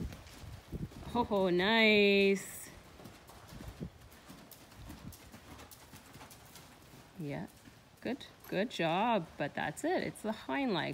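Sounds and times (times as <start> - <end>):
horse hoofbeats on soft dirt: 0.0 - 10.9.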